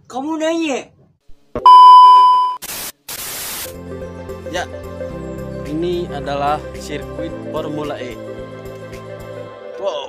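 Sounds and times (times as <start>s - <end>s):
steady test tone beep: 1.6s - 2.6s
tv static hiss: 2.5s - 3.7s
background music: 3.7s - 10.0s.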